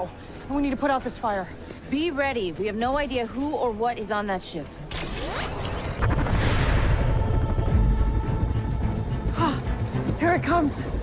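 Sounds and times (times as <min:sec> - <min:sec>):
dramatic score music: 0:00.0 - 0:11.0.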